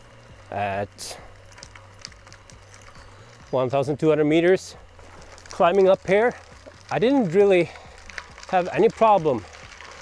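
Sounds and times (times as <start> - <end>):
faint scattered ticks: 0.0 - 10.0
low steady hum: 0.0 - 10.0.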